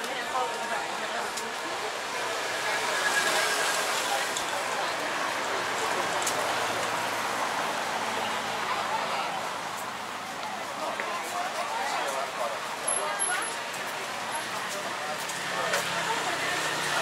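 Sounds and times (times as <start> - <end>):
indistinct voices of passers-by: 0.0 - 17.0
traffic noise: 0.0 - 17.0.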